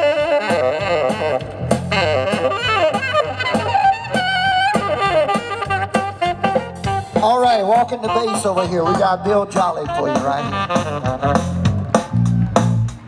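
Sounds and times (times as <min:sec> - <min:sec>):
electric guitar: 0:00.0 - 0:07.2
saxophone with vibrato: 0:00.0 - 0:12.5
bass: 0:00.0 - 0:13.0
drums: 0:00.0 - 0:13.0
man speaking: 0:07.2 - 0:10.8.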